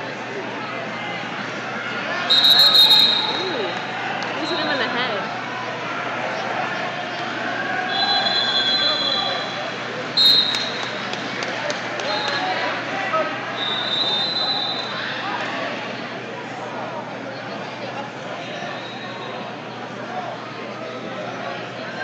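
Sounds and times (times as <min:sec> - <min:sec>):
crowd and coaches' voices: 0:00.0 - 0:22.0
whistle blasts: 0:02.3 - 0:03.6, 0:07.9 - 0:09.6, 0:10.2 - 0:10.9, 0:13.6 - 0:15.0.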